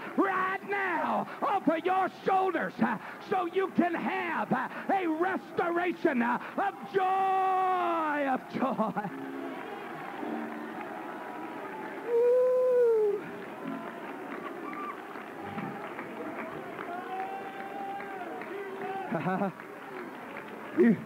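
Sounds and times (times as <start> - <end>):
congregation shouting praise: 0.0 - 21.0.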